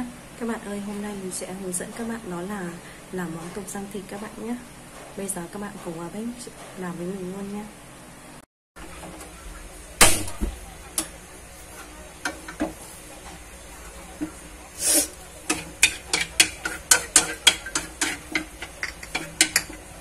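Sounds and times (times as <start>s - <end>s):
faint sizzle: 0.0s - 20.0s
chopsticks clicking on frying pan: 12.2s - 12.8s, 15.5s - 20.0s.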